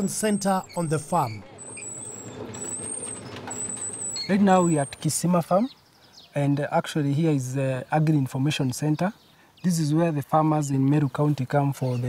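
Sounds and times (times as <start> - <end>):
grading machine running: 0.0 - 5.3.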